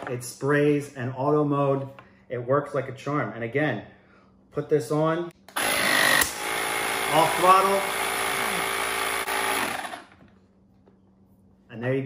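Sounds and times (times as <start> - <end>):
electric pump buzzing: 5.5 - 10.2.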